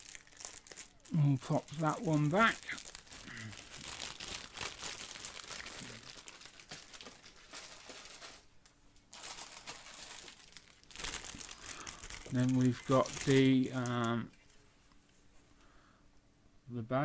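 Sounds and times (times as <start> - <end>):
plastic bag crinkling: 0.0 - 8.5, 9.1 - 14.6.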